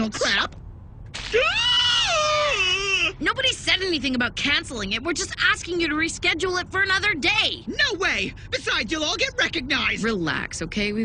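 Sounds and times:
high-pitched whining cry: 0:01.2 - 0:03.2.

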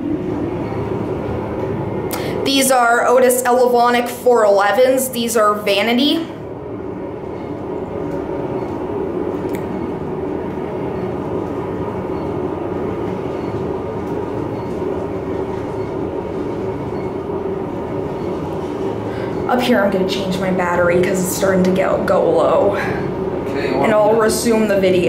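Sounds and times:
constant low hum: 0:00.0 - 0:25.0
elevator car rumbling: 0:00.0 - 0:25.0.

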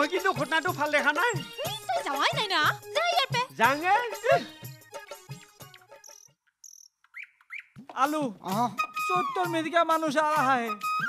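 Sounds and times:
man's voice: 0:00.0 - 0:01.6, 0:03.5 - 0:04.6, 0:07.9 - 0:10.8.

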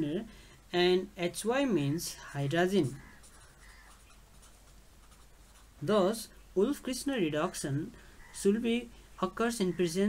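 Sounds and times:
felt-tip marker writing on paper: 0:03.0 - 0:05.8.

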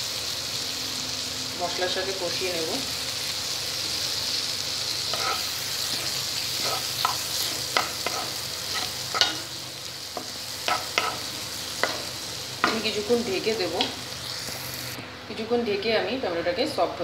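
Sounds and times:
vegetables sizzling in hot oil: 0:00.0 - 0:15.0
spatula scraping a pan: 0:05.0 - 0:09.6, 0:10.2 - 0:13.0.

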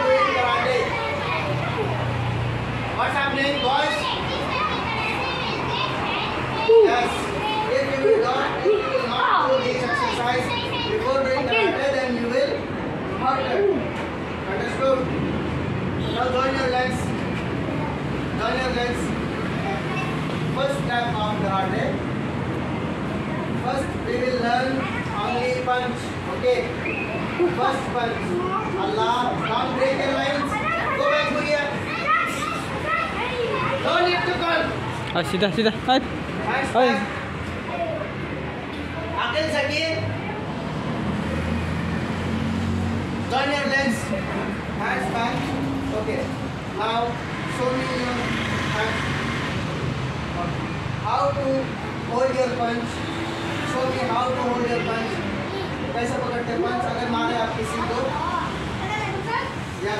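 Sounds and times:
boys talking and calling out: 0:00.0 - 0:59.9
children chattering: 0:00.0 - 0:59.9.

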